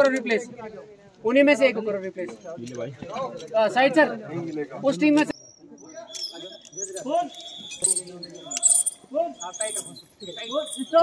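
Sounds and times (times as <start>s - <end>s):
people talking: 0.0s - 11.0s
metal climbing gear clinking: 5.3s - 11.0s.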